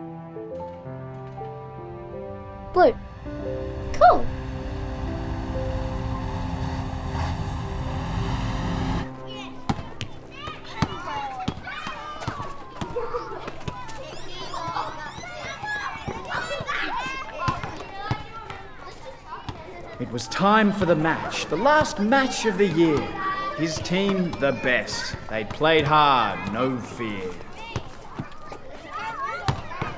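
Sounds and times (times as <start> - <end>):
music with held notes: 0.0 - 9.6
low rumble: 2.1 - 9.1
children shouting and calling: 8.9 - 20.1, 21.1 - 25.3, 27.3 - 29.9.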